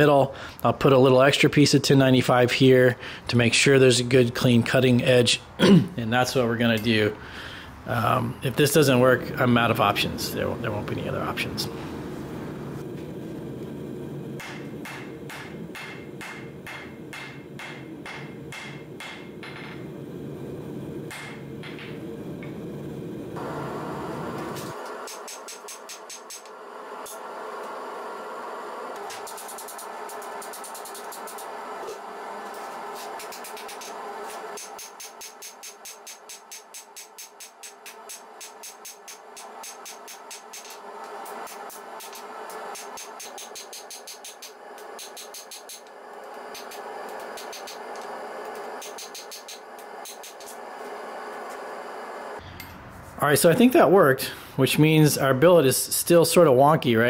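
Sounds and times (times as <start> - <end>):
hammer striking steel on anvil: 14.4 - 19.9, 21.1 - 22.0, 33.2 - 40.8, 52.4 - 53.0.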